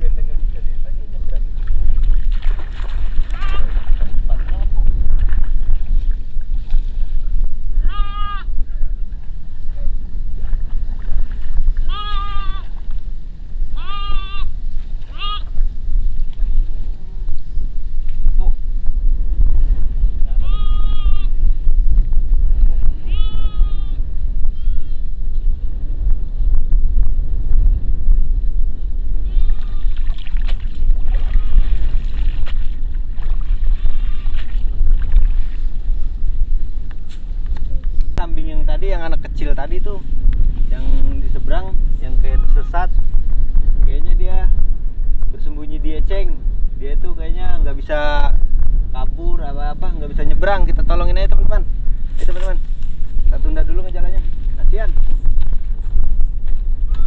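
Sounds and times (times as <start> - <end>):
wind rumbling on microphone: 0.0 - 57.0
goat bleating: 3.3 - 3.8, 7.8 - 8.5, 11.8 - 12.8, 13.7 - 14.5, 15.1 - 15.6, 20.3 - 21.4, 23.0 - 25.1, 29.2 - 30.0, 33.7 - 34.5.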